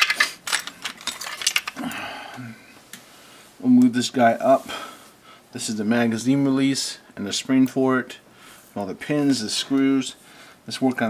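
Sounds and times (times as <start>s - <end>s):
small plastic parts clicking: 0.0s - 1.8s.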